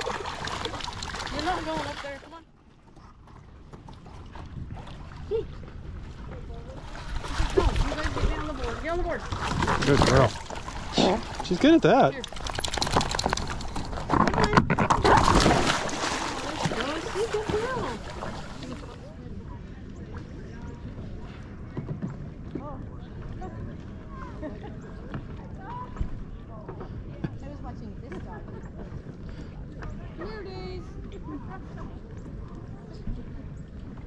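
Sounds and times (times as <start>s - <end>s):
water splashing and sloshing: 0.0s - 22.6s
faint distant voices: 14.1s - 34.0s.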